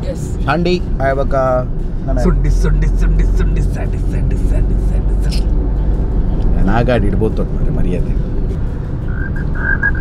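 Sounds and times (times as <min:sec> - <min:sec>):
people talking: 0:00.0 - 0:05.5
car rumble inside cabin: 0:00.0 - 0:10.0.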